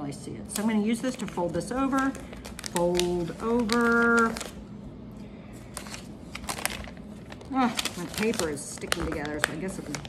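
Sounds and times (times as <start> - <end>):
paper handling and crinkles: 0.6 - 4.6, 5.4 - 10.0.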